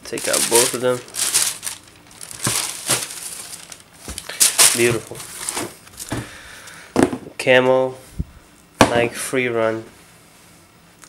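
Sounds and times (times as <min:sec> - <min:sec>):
tissue paper crinkling: 0:00.2 - 0:06.1.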